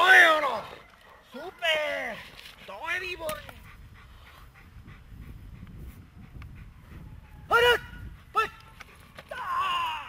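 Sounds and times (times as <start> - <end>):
dog panting: 2.9 - 9.2.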